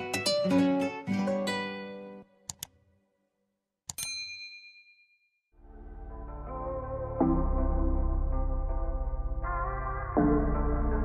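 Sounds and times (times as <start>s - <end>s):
soft music: 0.0s - 2.5s, 5.6s - 11.0s
bright bell ding: 3.9s - 5.3s.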